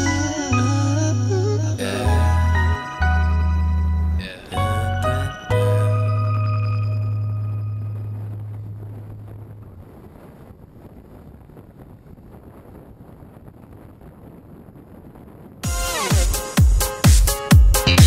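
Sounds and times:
held low note of a song: 0:00.0 - 0:10.3
wind on microphone: 0:07.7 - 0:15.6.

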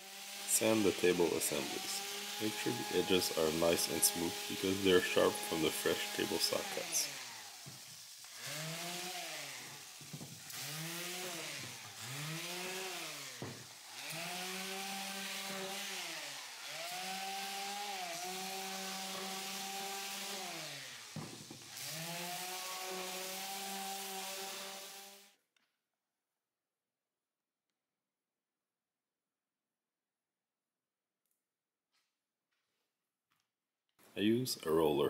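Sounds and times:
electric orbit sander sanding wood: 0:00.0 - 0:25.4.

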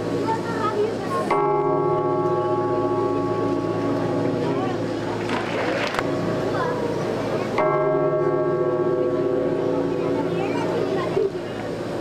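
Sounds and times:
faint voices: 0:00.0 - 0:12.0
deep bell tone: 0:01.3 - 0:11.4.

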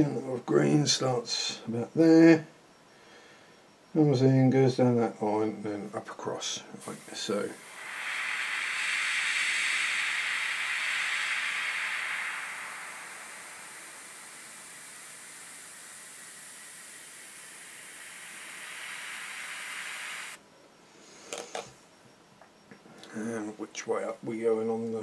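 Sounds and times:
airbrush spraying hiss: 0:06.8 - 0:20.4.

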